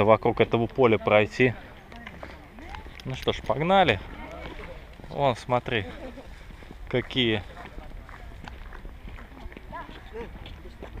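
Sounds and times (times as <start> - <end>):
faint voices: 0.0 - 11.0
footsteps on asphalt: 0.2 - 11.0.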